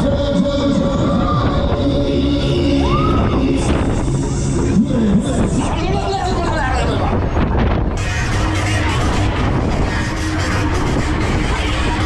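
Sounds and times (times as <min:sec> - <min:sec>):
fairground music: 0:00.0 - 0:12.0
wind rush on fairground ride: 0:00.0 - 0:12.0.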